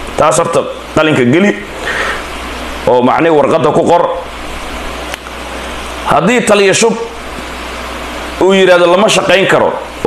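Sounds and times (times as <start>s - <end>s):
background hiss: 0.0s - 10.0s
man speaking: 0.2s - 1.8s, 2.8s - 4.3s, 6.0s - 7.2s, 8.4s - 10.0s.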